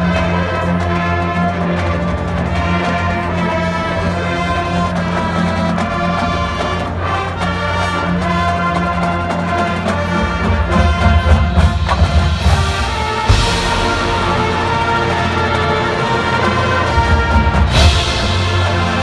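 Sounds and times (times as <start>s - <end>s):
marching band brass playing: 0.0s - 19.0s
low drums hitting: 11.4s - 16.3s
cymbals crashing: 12.3s - 19.0s.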